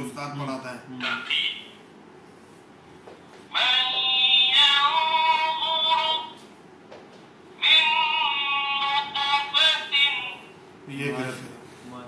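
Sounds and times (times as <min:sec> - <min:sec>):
chanted recitation from small speaker: 0:03.5 - 0:06.4, 0:07.6 - 0:10.5.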